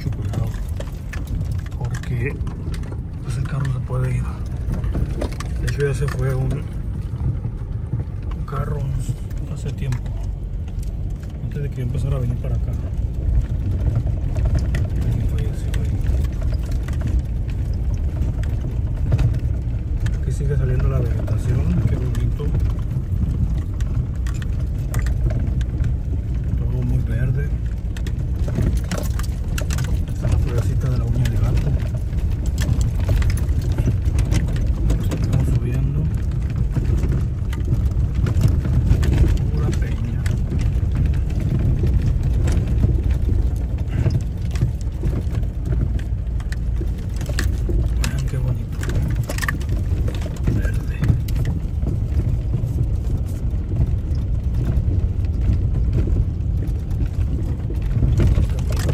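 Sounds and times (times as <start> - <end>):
car rumbling on rocky road: 0.0 - 58.9
stones knocking and rattles: 0.0 - 58.9.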